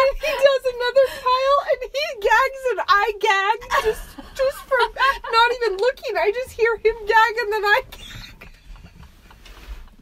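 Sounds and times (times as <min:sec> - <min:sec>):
women laughing breathily: 0:03.6 - 0:05.3, 0:08.0 - 0:10.0.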